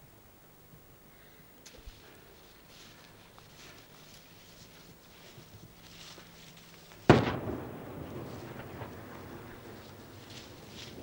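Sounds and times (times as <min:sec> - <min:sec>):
sharp loud echoing blast: 0:07.1 - 0:10.7.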